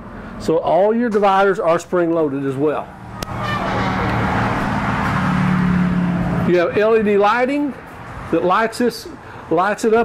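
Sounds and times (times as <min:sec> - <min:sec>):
motor vehicle engine running: 0:02.9 - 0:06.5.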